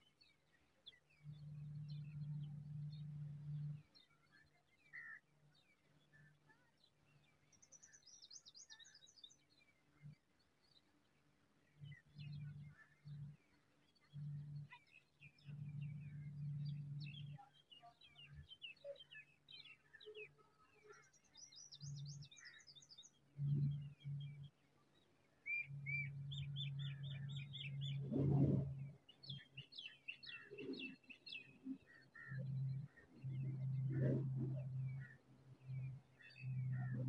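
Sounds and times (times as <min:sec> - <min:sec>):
low hum: 0:00.0 - 0:37.0
songbirds chirping and trilling: 0:00.0 - 0:37.0.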